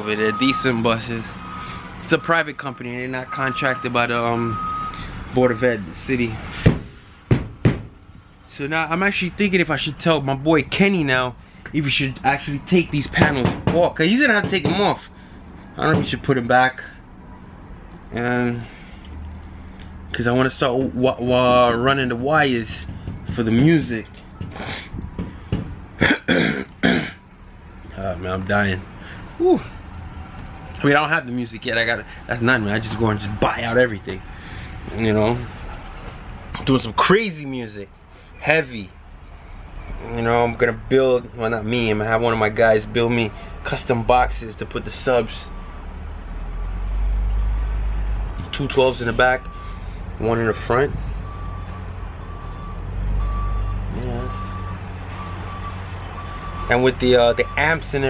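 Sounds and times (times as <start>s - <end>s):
vehicle reversing alarm beeping: 0.0s - 6.6s, 39.5s - 43.8s, 44.6s - 46.0s, 48.0s - 58.0s
diesel engine rumble: 0.0s - 58.0s
man coughing: 26.0s - 27.2s.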